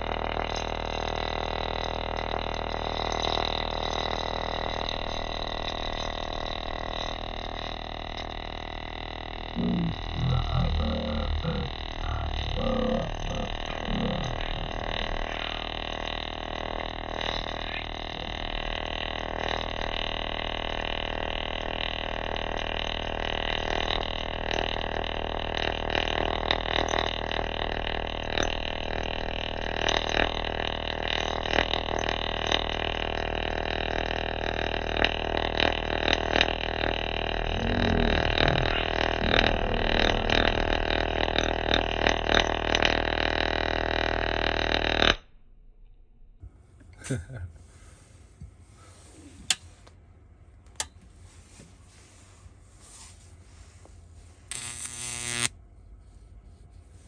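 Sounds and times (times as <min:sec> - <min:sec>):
electric arc crackling: 0:00.0 - 0:42.8, 0:54.5 - 0:55.5
electric arc buzzing: 0:00.0 - 0:44.5, 0:54.5 - 0:55.6.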